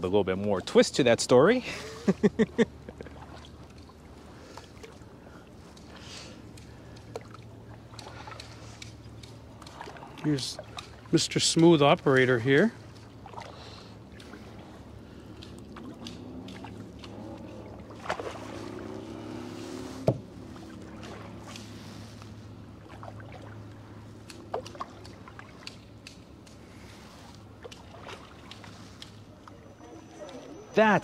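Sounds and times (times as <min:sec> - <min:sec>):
steady low hum: 0:00.0 - 0:30.8
paddle strokes: 0:00.0 - 0:31.0
water moving along hull: 0:00.0 - 0:31.0.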